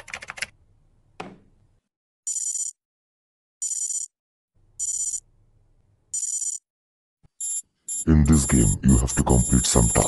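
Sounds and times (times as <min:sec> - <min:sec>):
fast typing on keyboard: 0:00.0 - 0:00.5
high electronic ringing tone: 0:06.2 - 0:06.6.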